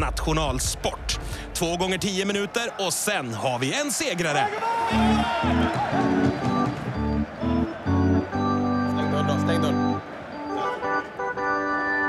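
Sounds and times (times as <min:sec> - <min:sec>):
organ chords: 0:04.9 - 0:12.0.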